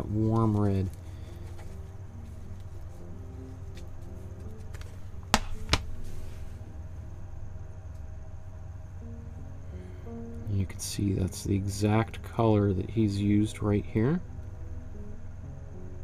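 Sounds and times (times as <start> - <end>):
soft background music: 0.0 - 16.0
steady low hum: 0.0 - 16.0.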